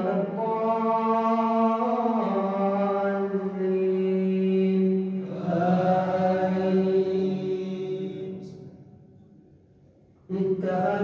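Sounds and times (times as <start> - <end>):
man reciting melodically: 0.0 - 8.7, 10.2 - 11.0.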